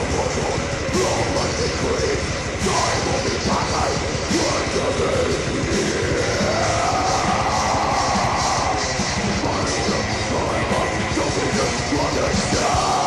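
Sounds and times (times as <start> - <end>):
distorted guitars: 0.0 - 13.0
fast drumming: 0.0 - 13.0.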